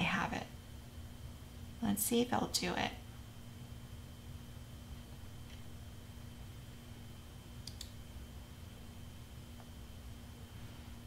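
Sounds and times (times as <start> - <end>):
low electrical hum: 0.0 - 11.0
computer mouse clicks: 7.6 - 8.0.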